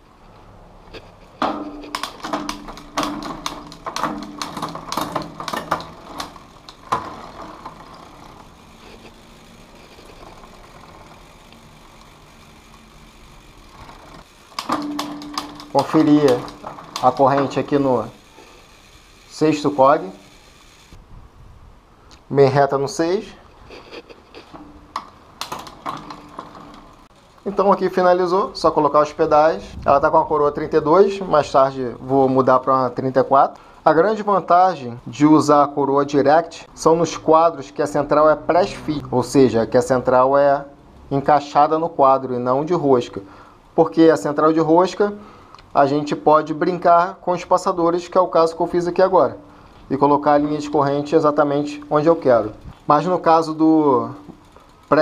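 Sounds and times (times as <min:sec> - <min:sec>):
bike chain clicking: 0:00.9 - 0:21.0, 0:23.7 - 0:29.5, 0:44.2 - 0:55.0.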